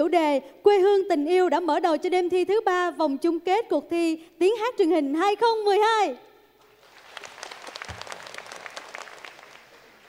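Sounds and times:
audience applauding: 6.6 - 10.0.

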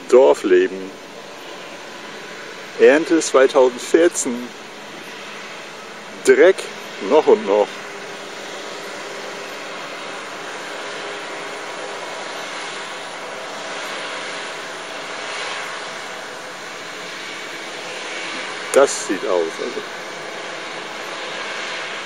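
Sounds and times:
distant farm machinery drone: 0.0 - 22.0.

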